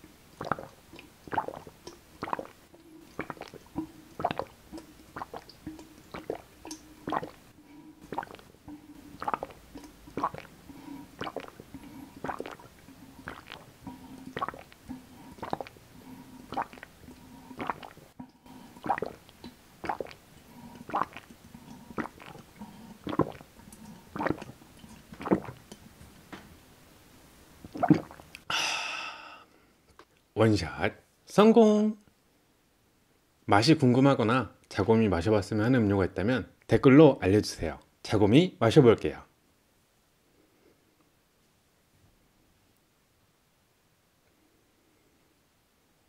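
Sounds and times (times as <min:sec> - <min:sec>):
person gulping juice: 0:00.0 - 0:26.5, 0:27.6 - 0:30.2.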